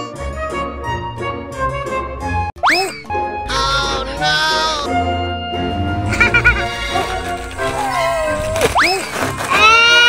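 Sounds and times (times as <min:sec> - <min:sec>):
comedy background music: 0:00.0 - 0:10.0
cartoon boing sound effect: 0:06.0 - 0:06.8.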